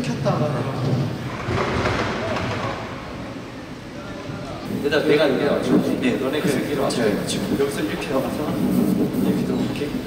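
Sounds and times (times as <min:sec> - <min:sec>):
hall room noise: 0:00.0 - 0:10.0.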